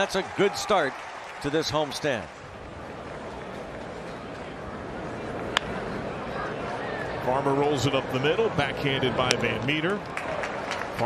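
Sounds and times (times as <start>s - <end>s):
crowd murmur: 2.5s - 11.0s.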